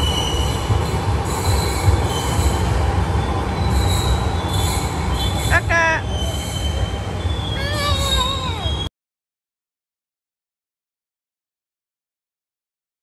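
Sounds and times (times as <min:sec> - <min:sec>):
high wheel squeals: 0:00.0 - 0:08.9
train rumble: 0:00.0 - 0:08.9.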